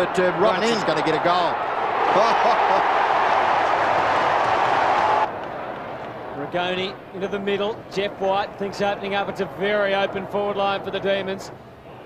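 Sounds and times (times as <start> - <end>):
stadium crowd cheering: 0.0 - 7.4.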